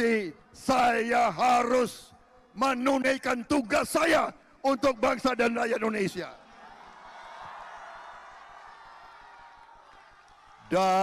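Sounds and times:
crowd applauding and cheering: 6.5 - 11.0.

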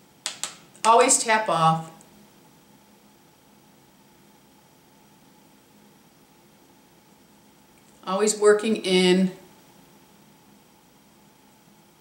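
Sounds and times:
faint room hiss: 0.0 - 12.0.

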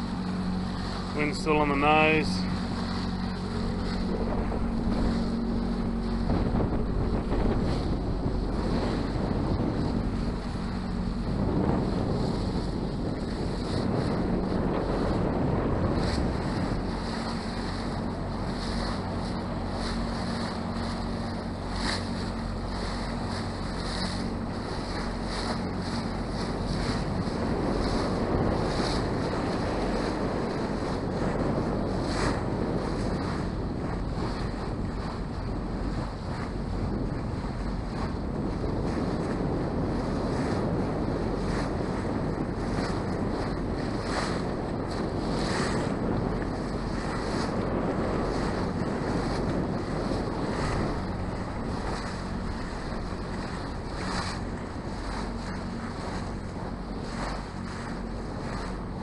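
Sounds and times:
boat engine humming: 0.0 - 59.0
water washing past hull: 0.0 - 59.0
wind buffeting microphone: 0.0 - 59.0.

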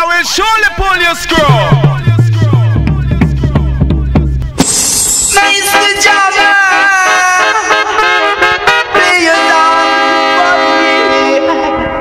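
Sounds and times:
reggae music: 0.0 - 12.0.

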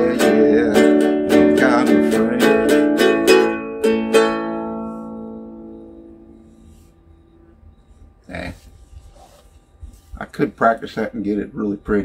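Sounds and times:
guitar chord strum ringing: 0.0 - 6.5.

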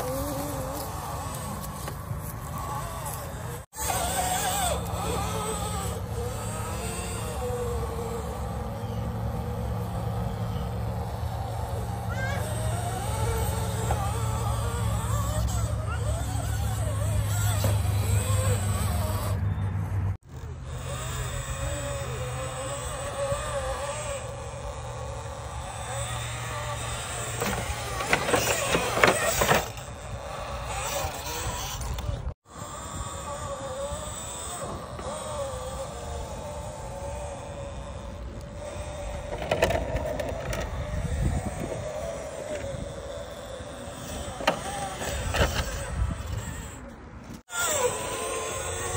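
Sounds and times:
electric motor whining: 0.0 - 48.9
grinding and scraping on rock: 26.4 - 32.2.

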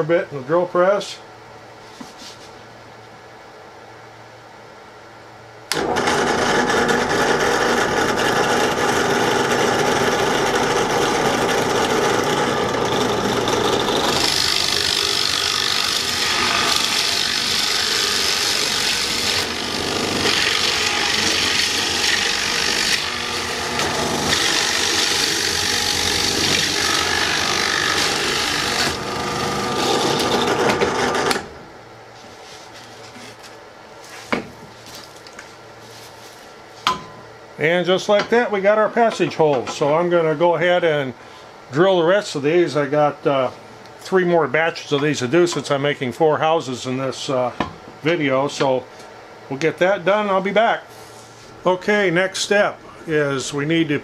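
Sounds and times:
drill press cutting wood: 5.7 - 31.5.

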